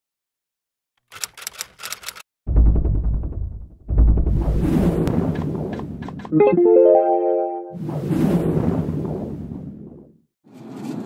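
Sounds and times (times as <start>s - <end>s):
typewriter-like clicks: 1.0s - 2.2s
deep rumbling hits: 2.5s - 6.2s.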